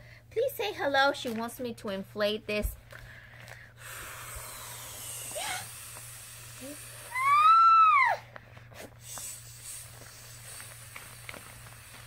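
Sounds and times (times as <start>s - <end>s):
breath hissing into balloon: 3.8s - 7.8s, 8.8s - 12.0s
balloon squealing: 4.1s - 8.2s.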